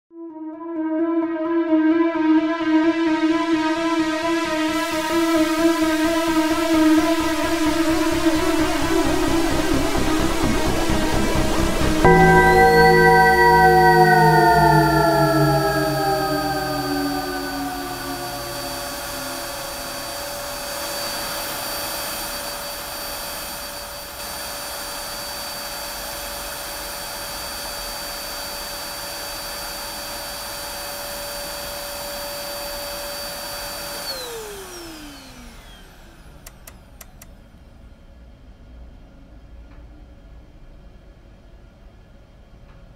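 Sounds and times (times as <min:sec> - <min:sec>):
vacuum cleaner running: 0:04.7 - 0:37.1
motor winding down: 0:33.9 - 0:37.2.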